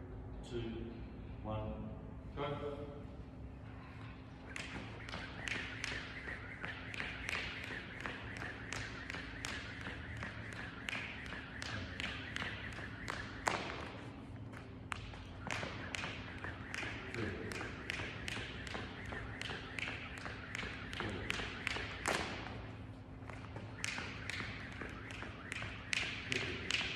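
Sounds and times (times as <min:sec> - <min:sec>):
skipping rope slapping rubber floor: 0:04.4 - 0:26.9.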